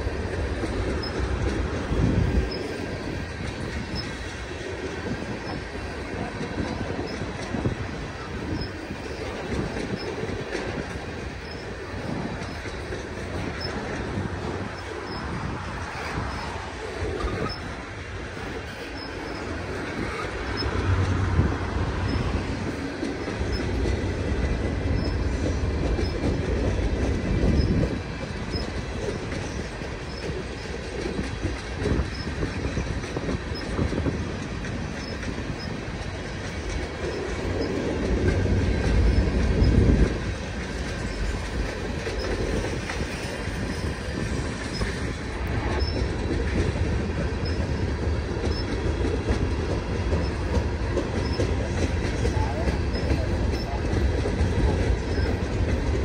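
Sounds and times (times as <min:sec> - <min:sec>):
freight train rolling past: 0:00.0 - 0:56.0
steel wheels rumbling on rail: 0:00.0 - 0:56.0.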